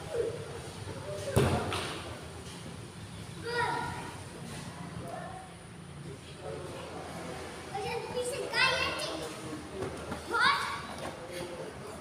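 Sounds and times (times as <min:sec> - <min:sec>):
child shouting high-pitched: 0:03.4 - 0:04.0, 0:10.3 - 0:10.8.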